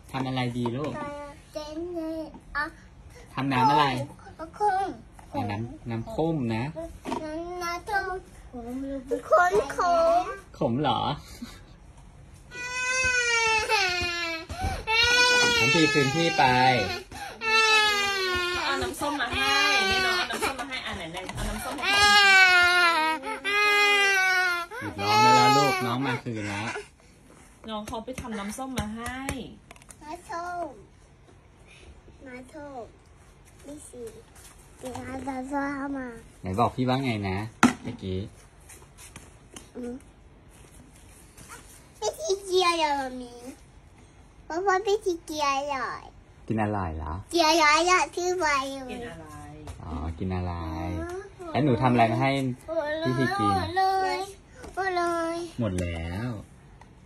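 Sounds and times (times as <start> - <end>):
toddler crying: 12.5 - 20.5, 21.8 - 26.8.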